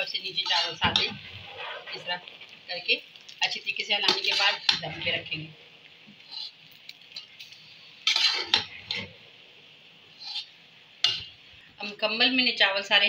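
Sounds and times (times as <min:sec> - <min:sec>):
metal spatula scraping a pot: 0:00.3 - 0:02.6, 0:04.0 - 0:05.4, 0:06.2 - 0:09.2, 0:10.2 - 0:11.3.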